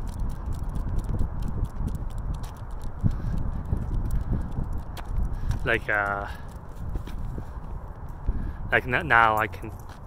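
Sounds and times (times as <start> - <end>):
footsteps on pavement: 0.0 - 10.0
wind rumble on microphone: 0.0 - 10.0.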